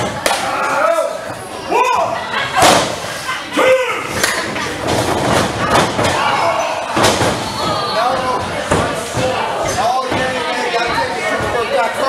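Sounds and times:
people shouting: 0.2 - 4.3, 5.6 - 8.4.

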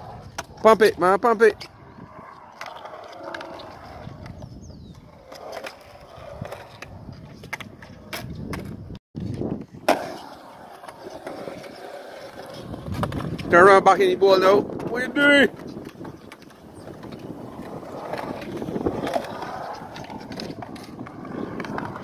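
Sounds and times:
skateboard wheels rolling on concrete: 0.0 - 22.0
skateboard clacks: 9.8 - 22.0.

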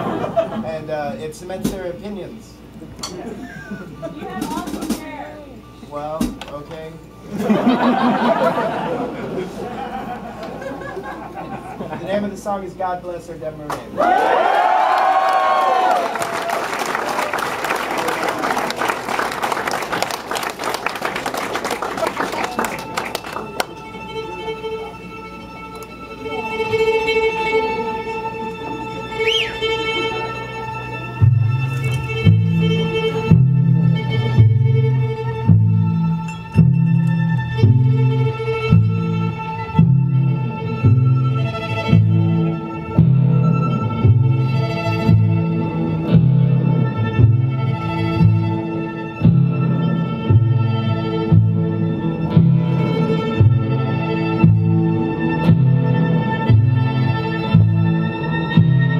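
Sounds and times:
band playing: 1.3 - 14.2, 15.2 - 58.9
audience applause: 14.0 - 23.8
violin tones: 18.4 - 58.9.

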